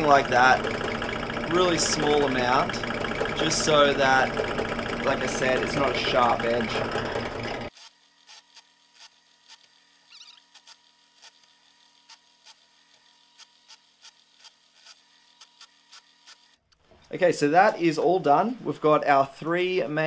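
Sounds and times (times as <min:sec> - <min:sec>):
loud sound cut off: 0:00.0 - 0:07.7.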